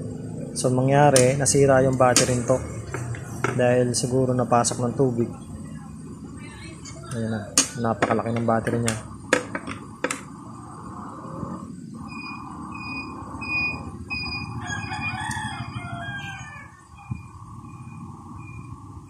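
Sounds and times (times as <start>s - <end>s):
steady hum: 0.0s - 13.4s.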